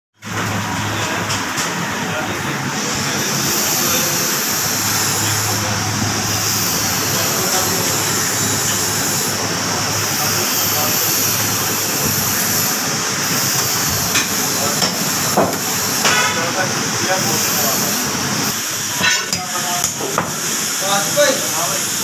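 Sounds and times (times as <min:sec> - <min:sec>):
hiss: 0:03.2 - 0:05.7, 0:10.0 - 0:16.4, 0:17.1 - 0:22.0.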